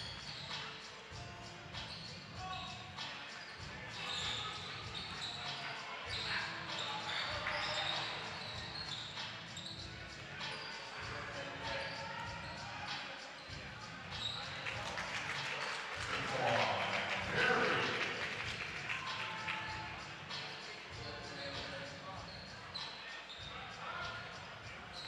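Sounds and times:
indistinct voices: 2.3 - 25.0.

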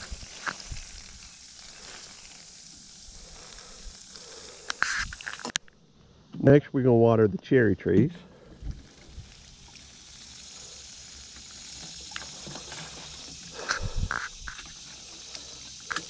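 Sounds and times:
watering can splashing onto mulch: 0.0 - 3.6, 11.4 - 16.0.

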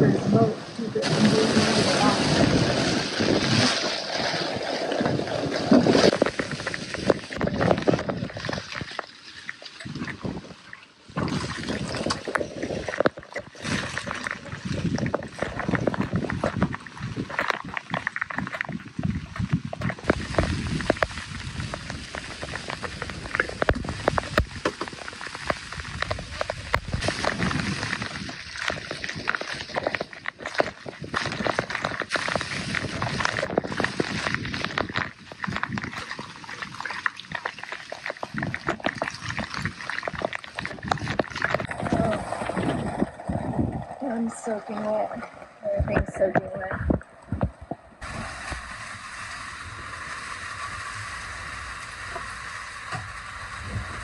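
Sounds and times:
wind gusting across microphone: 0.0 - 8.8, 13.7 - 37.3, 38.3 - 45.0
rain and spray splashing: 0.0 - 10.4, 11.2 - 43.0, 48.0 - 54.0
water sloshing around boat: 0.0 - 48.7.

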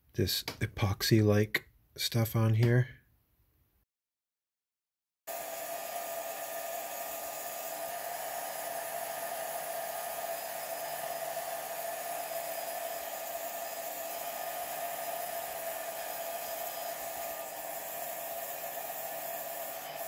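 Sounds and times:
heat gun blowing: 5.3 - 20.0.

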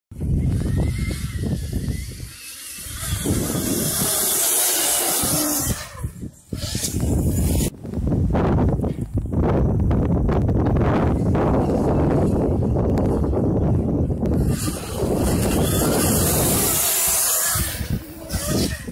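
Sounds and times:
wind buffeting microphone: 0.1 - 18.9
electric motorcycle whine: 0.2 - 7.7, 10.6 - 18.9.

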